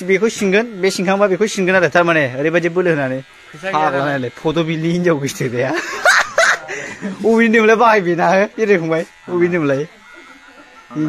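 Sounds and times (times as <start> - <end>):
young men laughing and snickering: 5.6 - 7.5.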